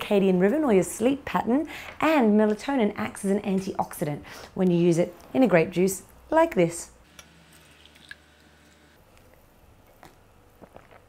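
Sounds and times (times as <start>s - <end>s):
juice being poured: 7.4s - 9.0s.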